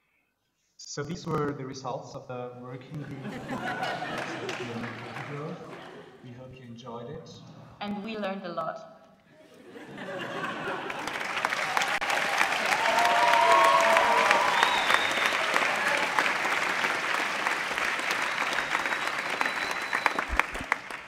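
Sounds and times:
audience applauding: 0:03.2 - 0:06.4, 0:09.8 - 0:21.0.

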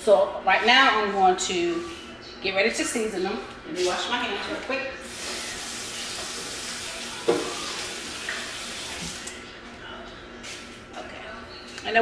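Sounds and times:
tap water running: 0:05.0 - 0:09.4.

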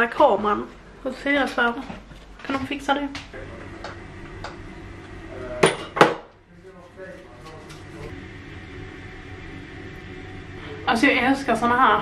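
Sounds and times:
low steady hum: 0:03.3 - 0:12.0.

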